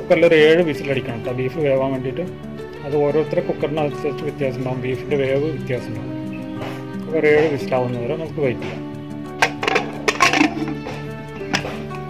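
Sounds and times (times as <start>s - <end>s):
background music: 0.0s - 12.0s
pressure cooker lid clinking: 9.4s - 11.8s
lid clatter: 9.4s - 11.9s.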